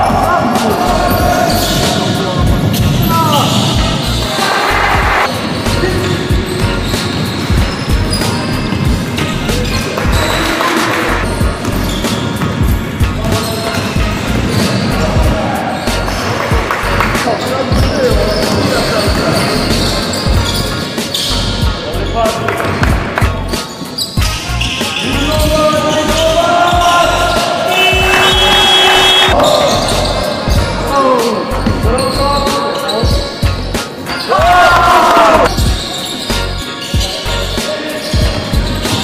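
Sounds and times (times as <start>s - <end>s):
players calling out: 0.0s - 39.0s
basketball bouncing on wooden floor: 6.3s - 15.4s.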